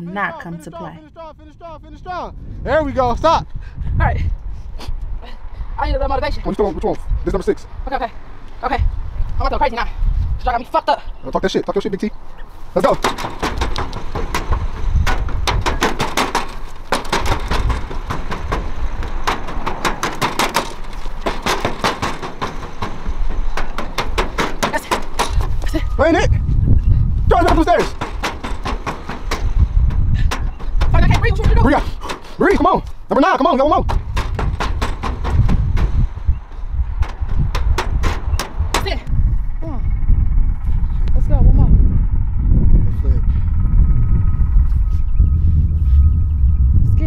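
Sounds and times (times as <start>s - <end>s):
wind rumble on microphone: 0.0s - 47.0s
footsteps on metal bleachers: 12.5s - 25.9s, 26.8s - 39.0s.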